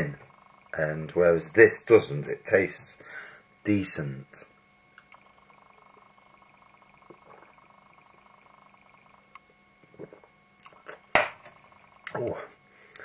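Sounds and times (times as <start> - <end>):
faint steady hum: 0.0 - 13.0
man sipping and swallowing: 9.8 - 11.1.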